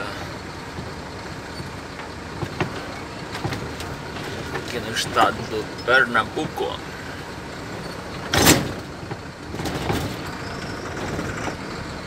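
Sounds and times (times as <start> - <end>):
vehicle road and engine noise: 0.0 - 12.0.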